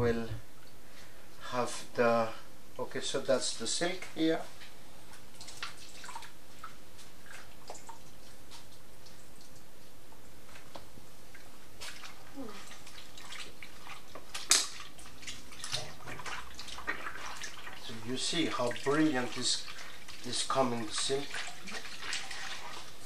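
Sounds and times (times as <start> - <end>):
water sloshing in a bowl: 4.0 - 9.9, 10.6 - 23.0
liquid dripping and trickling: 5.1 - 10.0, 10.7 - 23.0.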